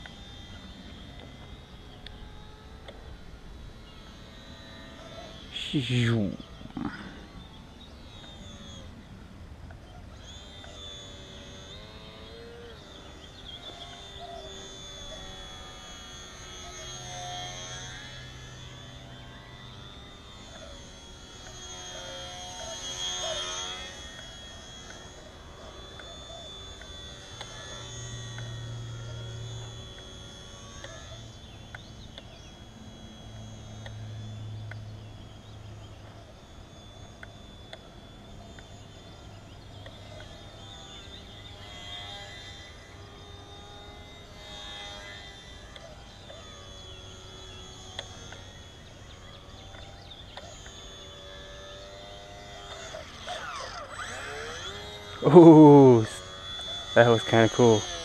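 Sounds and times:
model airplane motor whine: 0:00.0 - 0:58.0.

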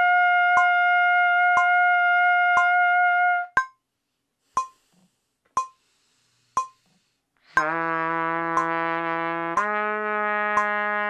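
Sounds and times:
metronome clicking: 0:00.5 - 0:00.9, 0:01.5 - 0:01.9, 0:02.6 - 0:02.8, 0:03.6 - 0:03.8, 0:04.6 - 0:04.8, 0:05.6 - 0:05.8, 0:06.6 - 0:06.8, 0:08.4 - 0:09.9, 0:10.5 - 0:11.0
trumpet low held note: 0:07.6 - 0:11.0.

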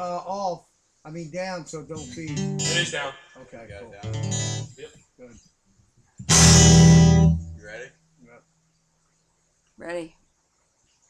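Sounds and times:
guitar chord strummed: 0:01.9 - 0:03.2, 0:03.9 - 0:04.7, 0:06.3 - 0:07.8.

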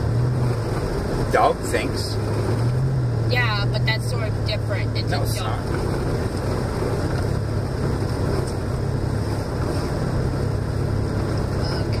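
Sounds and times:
car engine drone: 0:00.0 - 0:12.0.

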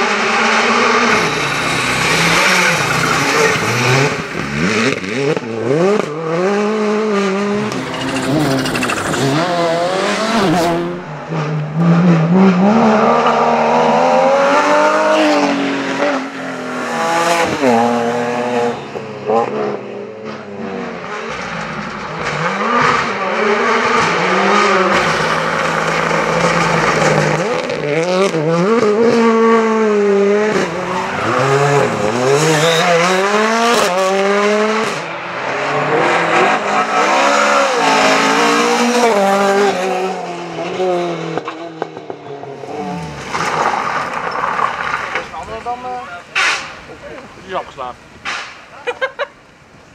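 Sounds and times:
rally car engines revving hard: 0:00.0 - 0:49.2.

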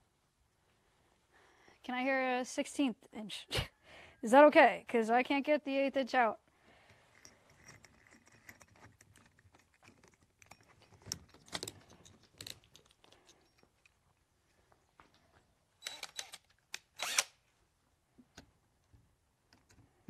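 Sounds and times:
drill chuck clicks and rattles: 0:15.8 - 0:17.3.

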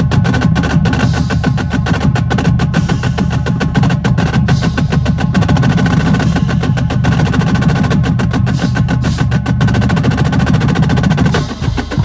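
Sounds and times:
bass drums: 0:00.0 - 0:12.0
snare drums: 0:00.0 - 0:12.0
tenor drums: 0:00.0 - 0:12.0.

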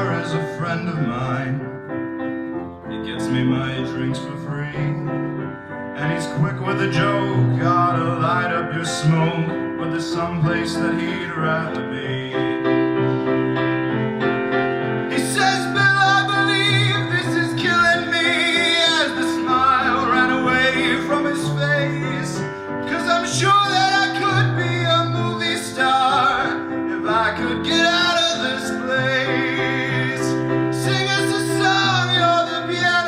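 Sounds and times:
grand piano playing: 0:00.0 - 0:33.0
person singing with vibrato: 0:15.0 - 0:33.0.

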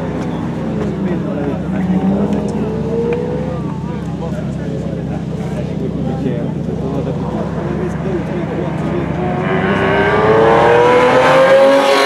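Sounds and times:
voices talking: 0:00.0 - 0:11.0
race car engine running: 0:00.0 - 0:12.0.

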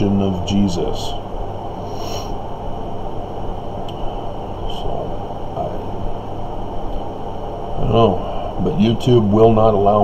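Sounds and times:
faint hum: 0:00.0 - 0:10.0
low rumble and hiss: 0:00.0 - 0:10.0.

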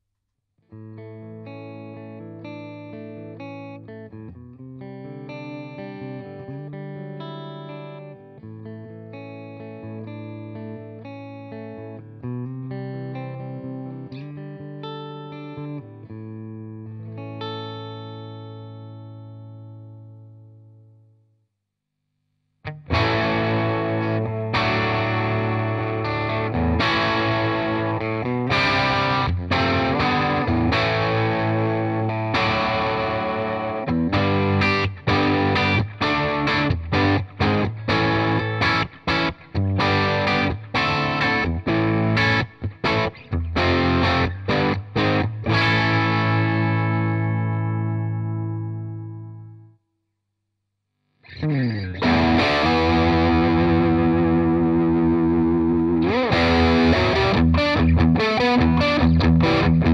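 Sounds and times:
overdriven electric guitar riff: 0:00.7 - 0:20.5, 0:22.7 - 0:49.7, 0:51.3 - 0:59.9.

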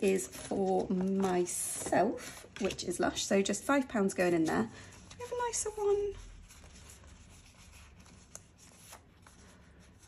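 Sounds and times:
banknotes rustling: 0:00.0 - 0:10.0.

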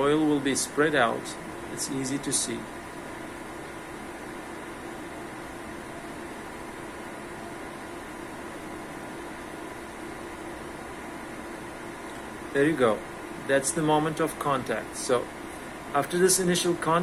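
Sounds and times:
cooling fans whirring: 0:00.0 - 0:17.0.

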